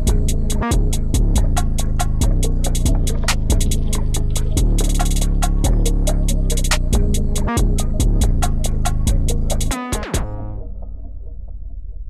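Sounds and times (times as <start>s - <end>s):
quick hi-hat ticks: 0.0s - 10.1s
sliding deep bass line: 0.0s - 12.0s.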